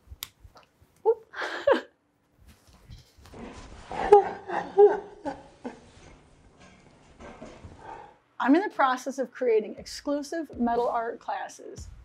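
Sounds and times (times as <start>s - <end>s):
laugh-like voice: 3.9s - 6.0s.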